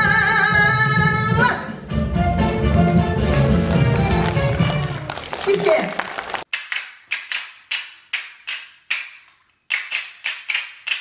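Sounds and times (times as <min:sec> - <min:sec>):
music: 0:00.0 - 0:05.4.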